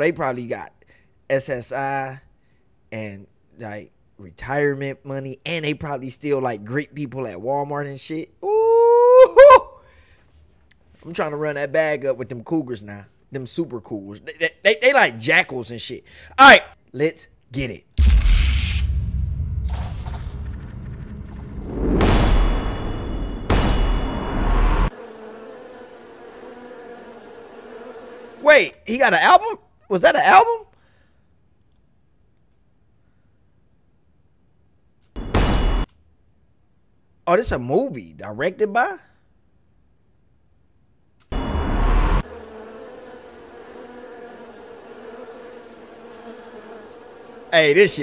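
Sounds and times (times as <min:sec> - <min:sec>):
deep bass hit: 0:18.0 - 0:24.9
loud low boom: 0:18.0 - 0:24.9
low buzzing drone: 0:18.8 - 0:24.9, 0:41.4 - 0:44.6
buzzing drone: 0:22.1 - 0:28.4, 0:41.4 - 0:47.3
steady drone of held tones: 0:41.4 - 0:43.3.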